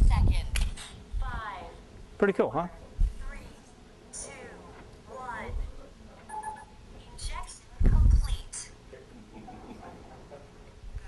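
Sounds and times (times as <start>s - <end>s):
short electronic beeps: 6.3s - 6.8s.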